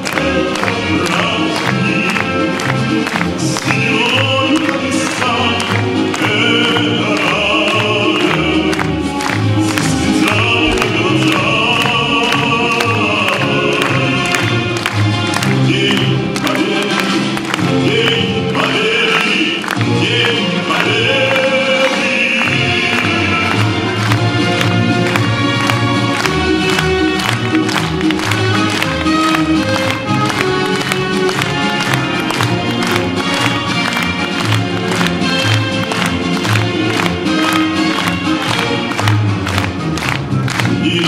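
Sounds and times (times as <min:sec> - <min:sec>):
instrumental accompaniment: 0:00.0 - 0:41.0.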